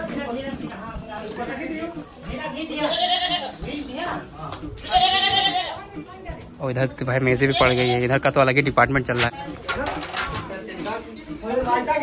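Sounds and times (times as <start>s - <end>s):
faint voices talking: 0.0s - 12.0s
bleat-like animal call: 2.8s - 3.6s, 4.8s - 5.8s, 7.5s - 8.0s.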